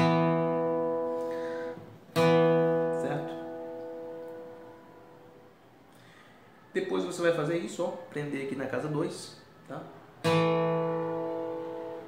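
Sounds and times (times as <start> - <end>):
acoustic guitar chord: 0.0 - 6.2, 10.2 - 12.0.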